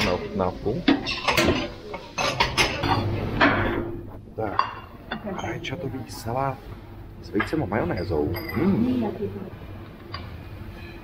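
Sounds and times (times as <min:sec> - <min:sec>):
metallic clinks of serving utensils: 0:07.9 - 0:08.8.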